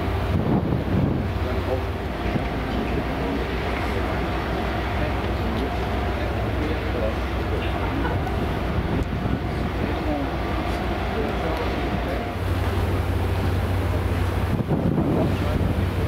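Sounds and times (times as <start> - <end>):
wind on microphone: 0.0 - 4.7, 8.0 - 10.9, 11.6 - 16.0
ferry engines droning: 0.0 - 16.0.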